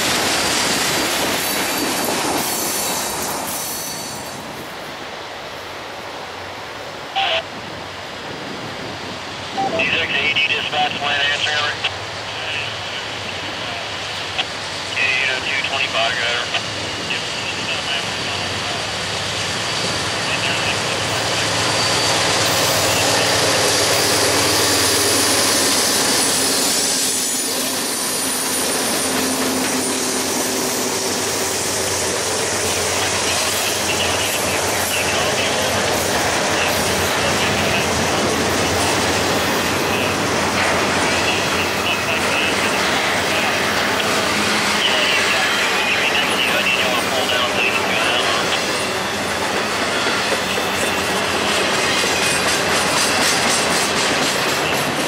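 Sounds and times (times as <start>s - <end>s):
diesel locomotive engine: 0.0s - 55.0s
rail cars rumbling and clattering: 0.0s - 55.0s.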